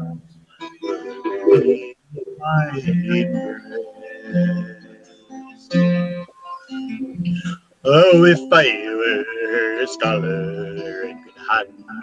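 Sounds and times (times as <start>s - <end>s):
acoustic guitar strumming: 0.0s - 12.0s
person singing folk song: 0.0s - 12.0s.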